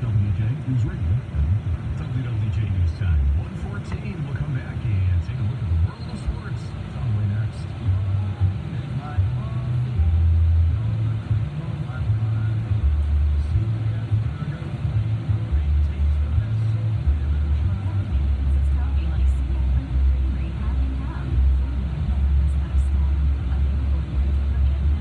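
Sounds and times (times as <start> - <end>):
car radio music with deep bass: 0.0 - 25.0.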